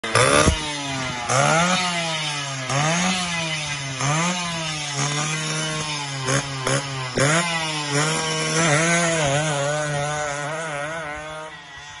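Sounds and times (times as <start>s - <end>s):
two-stroke engine revving: 0.0s - 12.0s.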